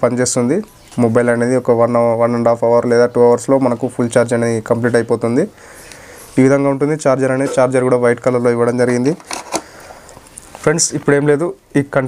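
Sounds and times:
man talking: 0.0 - 5.6, 6.4 - 9.3, 10.6 - 12.0.

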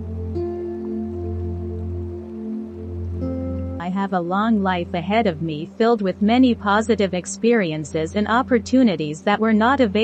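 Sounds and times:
soft new-age music: 0.0 - 10.0
person speaking: 3.8 - 10.0.

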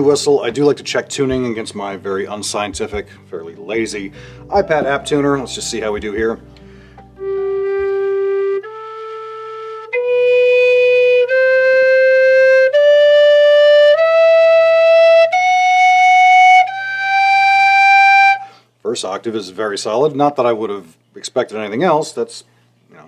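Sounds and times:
whistle playing ascending scale: 7.2 - 18.5.

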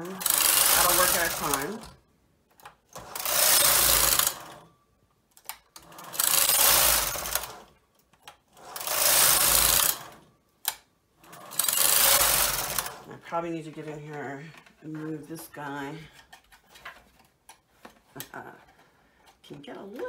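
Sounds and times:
knitting machine carriage rattling: 0.0 - 2.0, 2.6 - 4.7, 5.4 - 10.3, 11.2 - 17.2.

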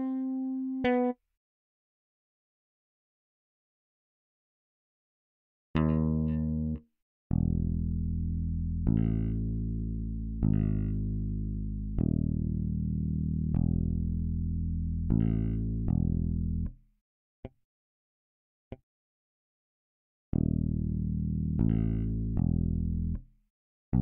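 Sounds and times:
electric bass sustained low notes: 5.8 - 16.8, 20.4 - 23.3.

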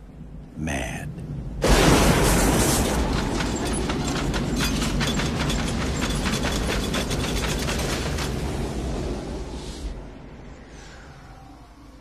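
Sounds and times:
deep wind rumble: 0.0 - 12.0
debris rattling: 1.6 - 8.6.

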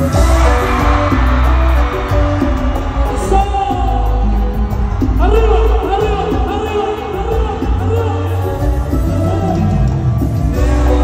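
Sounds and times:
live band music with heavy bass: 0.0 - 11.0
man singing: 0.0 - 11.0.

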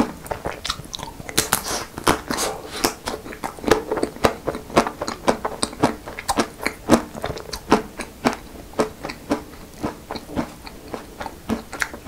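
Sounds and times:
chewing crunchy chocolate coating: 0.0 - 12.0.

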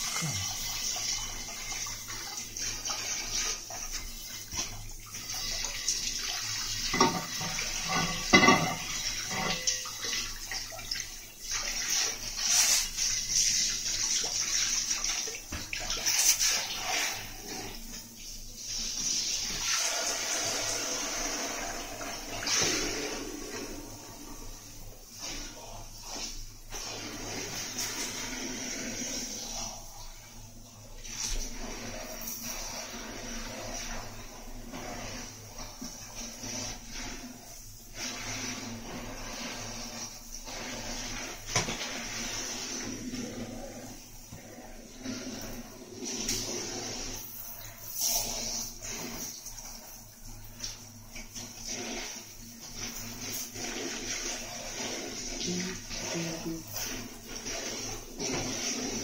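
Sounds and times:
water spraying from shower hose: 0.0 - 59.0.

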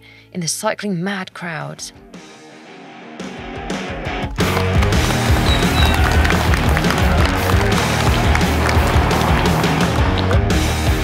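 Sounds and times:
loud rock music: 2.0 - 11.0.

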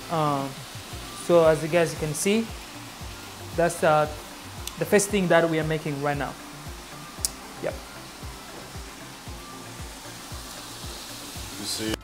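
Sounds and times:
background music with low beat: 0.0 - 12.0
meat sizzling in a pan: 0.0 - 12.0.

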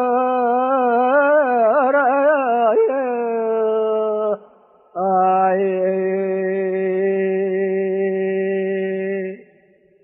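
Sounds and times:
man singing unaccompanied: 0.0 - 4.4, 5.0 - 9.4.

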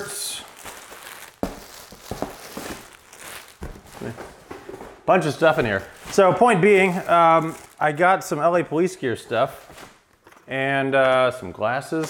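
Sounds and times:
plastic wrap crinkling: 0.0 - 8.5.

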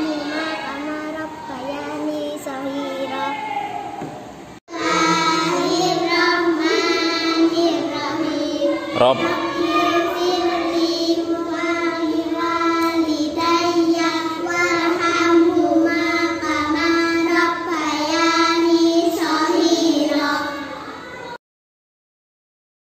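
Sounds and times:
girls singing: 4.7 - 20.8.

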